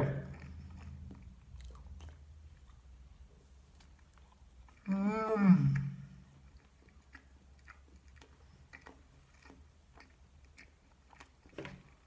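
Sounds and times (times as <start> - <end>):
wet mouth clicks of chewing: 0.0 - 5.0, 5.6 - 12.0.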